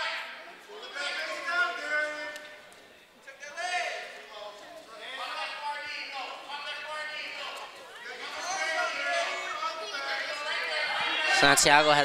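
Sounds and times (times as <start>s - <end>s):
raised voices calling out: 4.9s - 12.0s.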